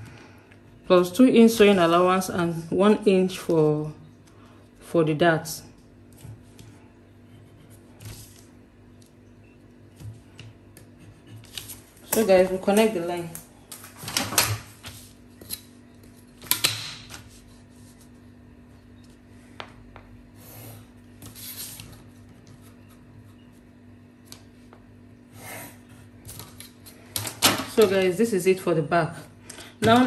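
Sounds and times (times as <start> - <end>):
faint steady hum: 0.0 - 30.0
pencil scratching on paper: 7.2 - 8.4, 10.8 - 11.6.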